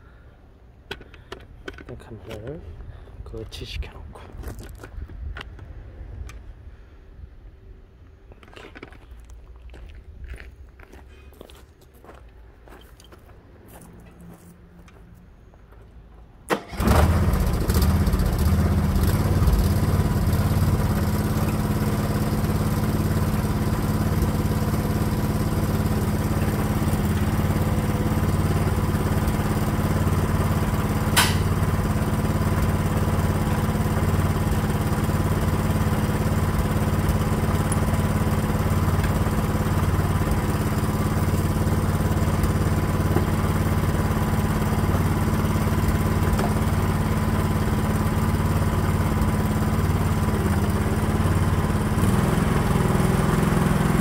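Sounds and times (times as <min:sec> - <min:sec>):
excavator engine idling: 0:16.7 - 0:54.0
sharp knock: 0:31.2 - 0:31.5.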